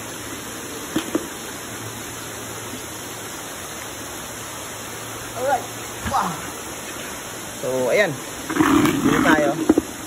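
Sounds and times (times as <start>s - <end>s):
water rushing and bubbling: 0.0s - 10.0s.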